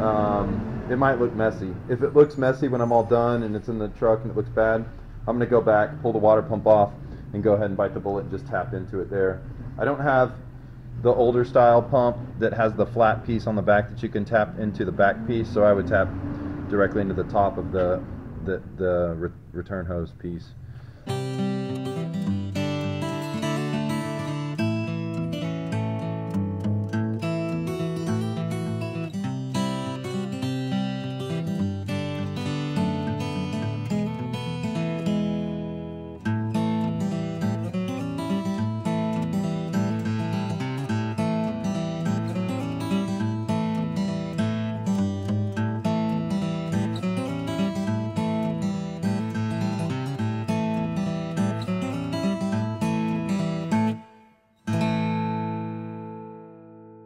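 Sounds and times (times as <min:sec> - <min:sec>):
strummed acoustic guitar: 0:00.0 - 0:18.6, 0:20.6 - 0:57.0.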